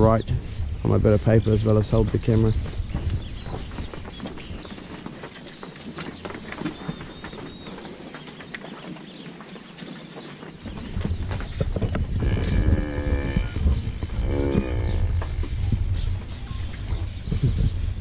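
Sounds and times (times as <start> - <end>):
low rumbling noise: 10.7 - 18.0
cow mooing: 12.2 - 15.3.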